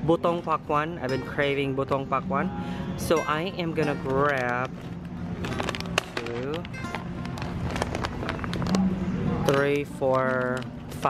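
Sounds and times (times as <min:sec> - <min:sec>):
plastic pouches crinkling: 0:03.4 - 0:08.9.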